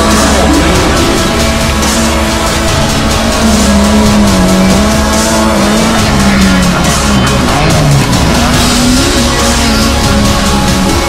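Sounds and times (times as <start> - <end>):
rally car engine at high revs: 0.0 - 11.0
soundtrack music: 0.0 - 11.0.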